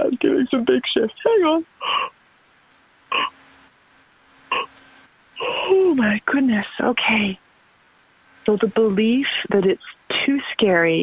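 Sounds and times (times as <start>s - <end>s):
person making croaky vocal sounds: 3.1s - 3.3s, 4.5s - 4.7s.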